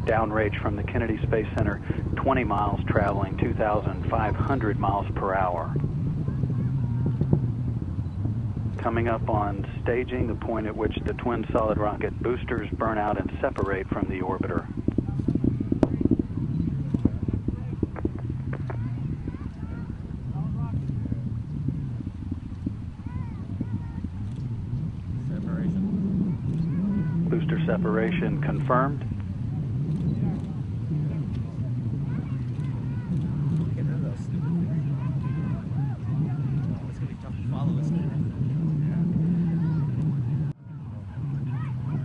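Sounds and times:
low engine hum: 0.0s - 42.0s
low wavering drone: 0.0s - 42.0s
faint scattered voices: 3.6s - 8.2s, 8.8s - 42.0s.

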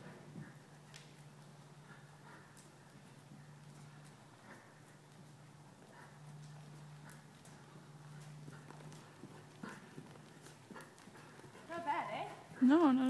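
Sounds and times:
hoofbeats on dirt: 0.0s - 13.0s
steady low hum: 0.0s - 13.0s.

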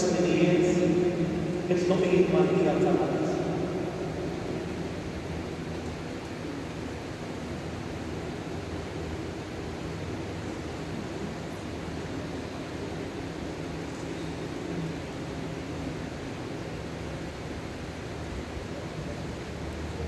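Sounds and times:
electric fan hiss: 0.0s - 20.0s
faint low hum: 0.0s - 20.0s.

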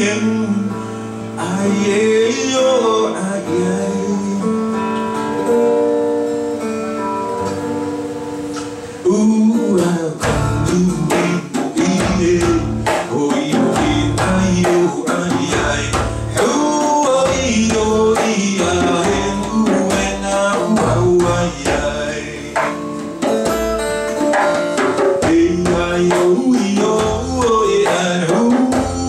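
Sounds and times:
man singing: 0.0s - 5.0s, 9.0s - 23.4s, 25.0s - 29.0s
acoustic guitar strumming: 0.0s - 29.0s
djembe hand drumming: 10.2s - 29.0s.

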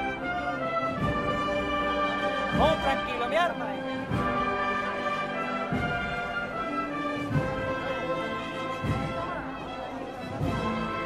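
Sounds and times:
brass band playing slow march: 0.0s - 11.0s
low drum beat: 3.8s - 4.8s, 5.6s - 6.5s, 7.2s - 8.0s, 8.7s - 9.6s.

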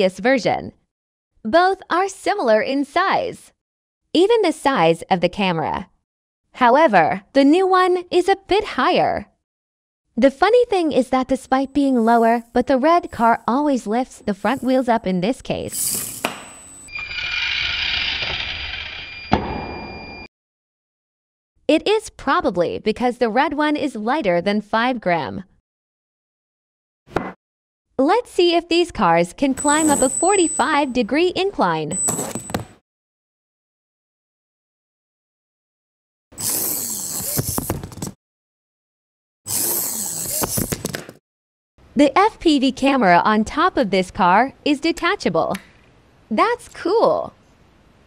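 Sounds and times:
tiny electric motors whining: 16.9s - 19.3s.

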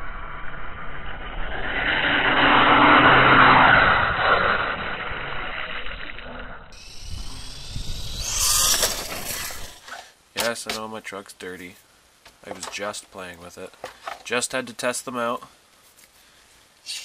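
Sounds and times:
electric motor whine: 1.0s - 9.9s.

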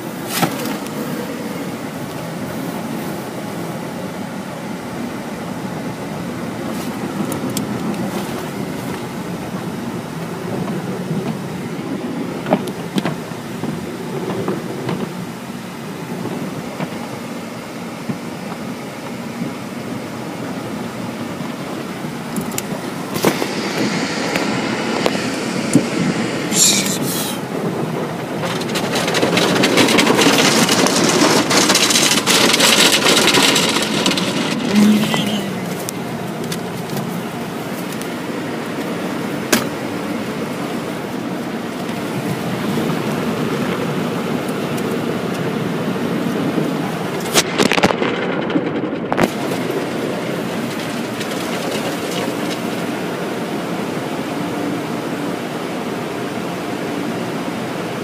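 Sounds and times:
water spray hissing on car: 0.0s - 47.4s
car wash machinery rumbling: 0.0s - 58.0s.

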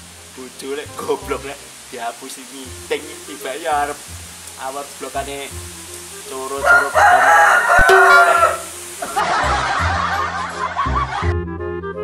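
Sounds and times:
background music with bass: 0.0s - 12.0s
rooster crowing: 6.6s - 8.7s.

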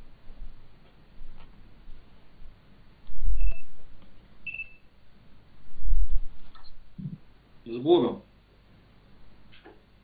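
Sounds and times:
high-pitched electronic beeps: 3.4s - 3.7s, 4.4s - 4.9s.

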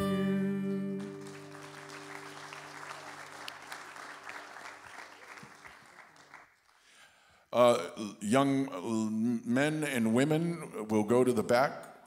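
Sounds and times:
acoustic guitar chord ringing: 0.0s - 2.3s
congregation applauding: 1.0s - 7.0s.

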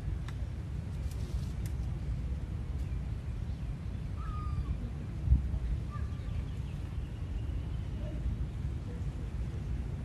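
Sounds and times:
faint animal calls: 4.2s - 4.9s.

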